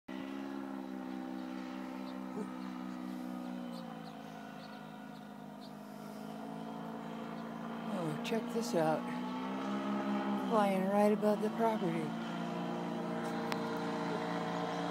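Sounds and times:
paramotor engine droning overhead: 0:00.1 - 0:14.9.

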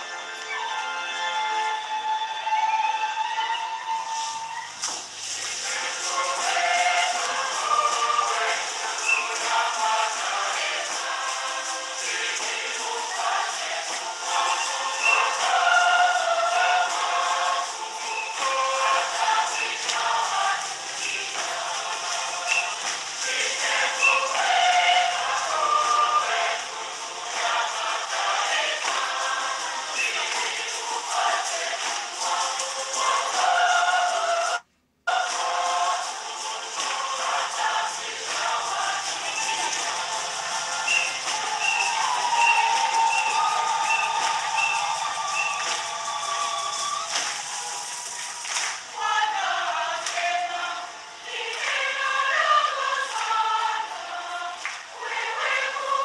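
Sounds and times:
choir singing a hymn: 0:00.0 - 0:56.0.

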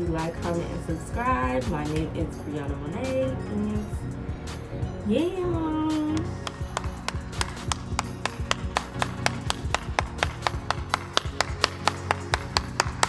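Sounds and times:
background music with low tone: 0:00.0 - 0:13.0
hand clapping: 0:06.1 - 0:13.0.

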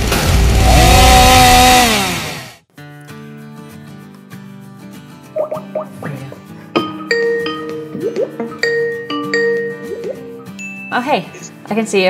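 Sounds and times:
chainsaw engine revving: 0:00.0 - 0:02.6
quiet music: 0:05.3 - 0:12.0.

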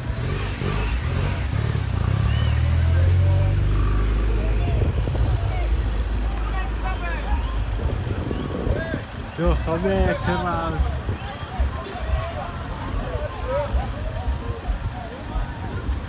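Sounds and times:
car engine running: 0:00.0 - 0:16.0
scattered voices: 0:00.0 - 0:16.0.

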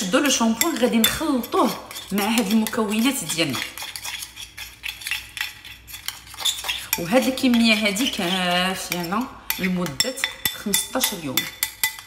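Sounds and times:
fork clinking against glass bowl: 0:00.2 - 0:12.0.

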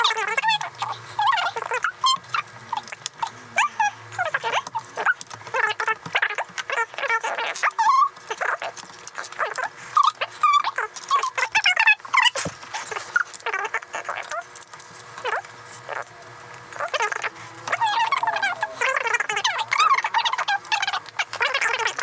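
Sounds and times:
sped-up squeaky chatter: 0:00.0 - 0:14.6, 0:15.2 - 0:22.0.

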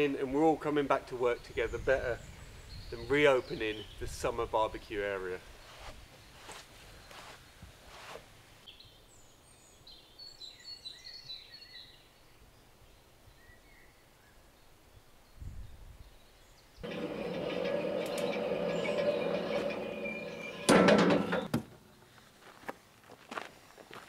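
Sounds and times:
machine engine humming: 0:16.8 - 0:21.5.

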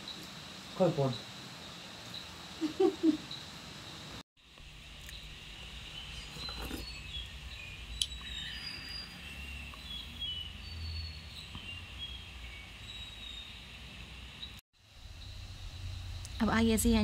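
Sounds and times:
low steady hum: 0:11.2 - 0:17.0.

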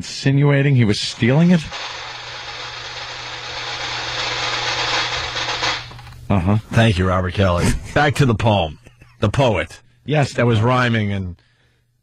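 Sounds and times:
machine-like noise with low hum: 0:00.1 - 0:11.0.

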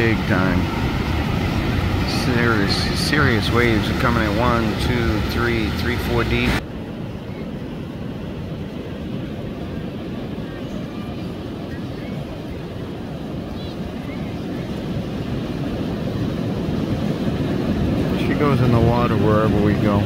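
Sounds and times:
ocean surf breaking on beach: 0:00.0 - 0:20.0.

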